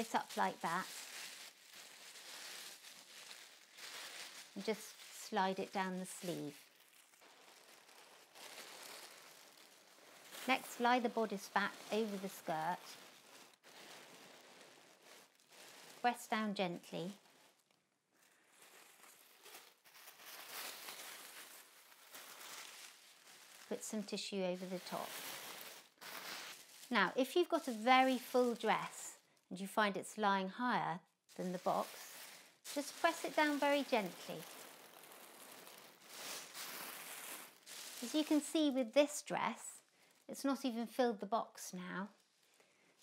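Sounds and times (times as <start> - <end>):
tissue paper rustling: 0.0 - 29.2, 31.3 - 40.3.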